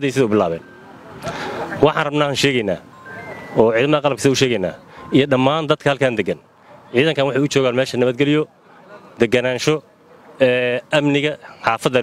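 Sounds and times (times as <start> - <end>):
man speaking: 0.0 - 0.7, 1.6 - 2.9, 3.5 - 12.0.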